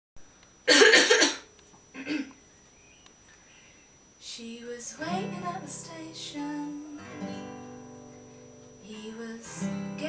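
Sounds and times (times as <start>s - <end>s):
woman coughing: 0.7s - 2.3s.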